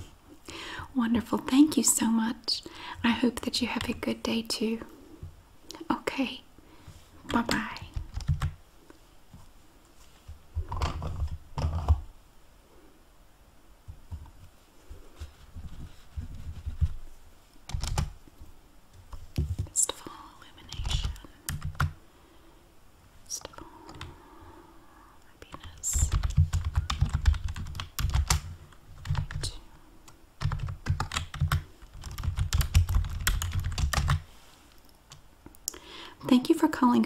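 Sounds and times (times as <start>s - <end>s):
keyboard typing: 7.4s - 8.6s, 17.7s - 18.2s, 20.7s - 22.0s, 25.5s - 29.6s, 30.4s - 34.2s.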